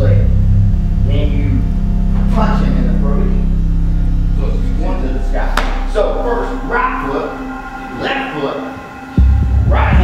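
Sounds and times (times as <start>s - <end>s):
indistinct voices: 0.0s - 10.0s
loud low hum: 0.0s - 10.0s.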